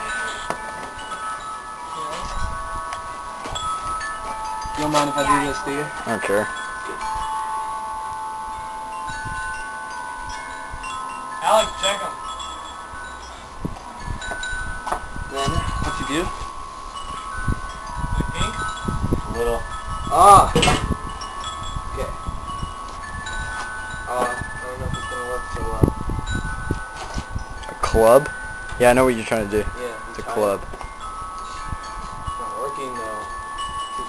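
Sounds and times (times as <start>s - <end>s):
chimes ringing: 0.0s - 34.0s.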